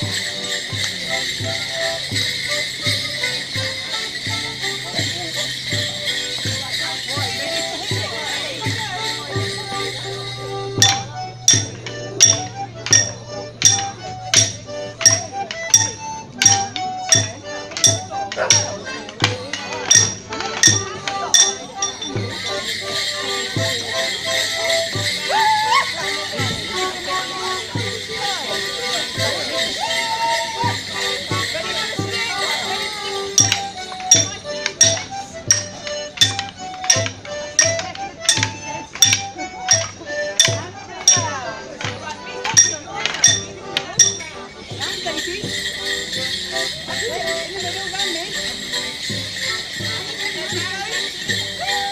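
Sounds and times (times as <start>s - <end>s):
jingling bells: 0.0s - 51.9s
melodeon tune: 0.0s - 51.9s
steady drum beat: 0.0s - 51.9s
sharp metallic strikes: 33.4s - 41.2s
sharp metallic clink: 42.6s - 44.4s.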